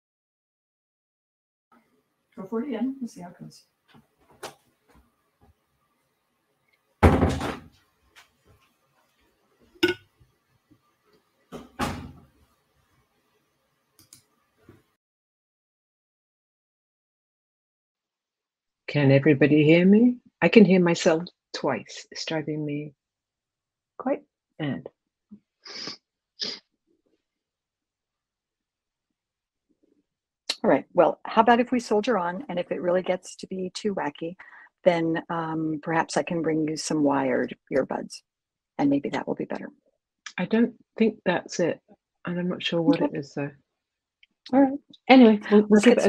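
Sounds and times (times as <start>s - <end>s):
door closing with thump: 7.0s - 7.7s, 11.5s - 12.3s
faint clicks: 14.0s - 14.3s.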